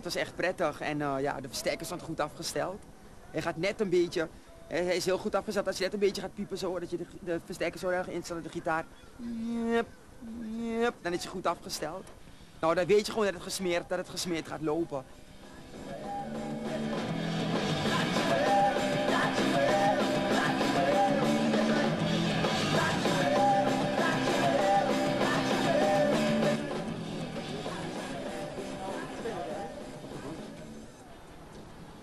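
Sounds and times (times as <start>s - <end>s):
person singing: 15.8s - 30.8s
rock band playing: 16.5s - 27.6s.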